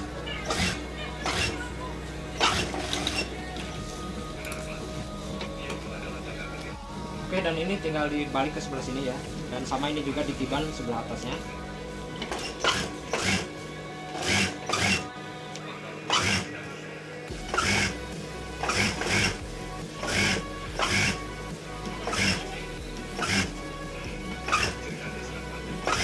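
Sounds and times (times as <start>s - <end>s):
background music with held tones: 0.0s - 26.0s.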